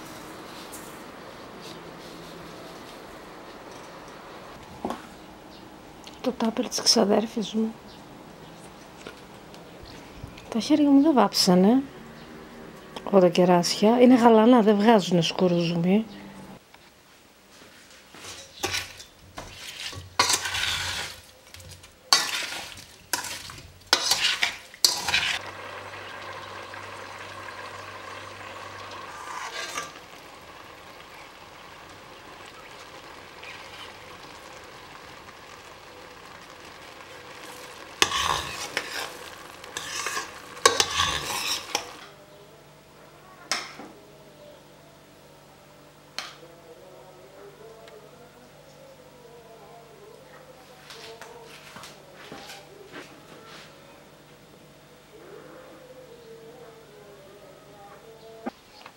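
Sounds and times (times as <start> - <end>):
metal spoon scraping a pot: 18.3 - 21.3, 22.1 - 25.4, 29.0 - 30.0, 38.0 - 42.1
syrup simmering hiss: 23.9 - 42.2.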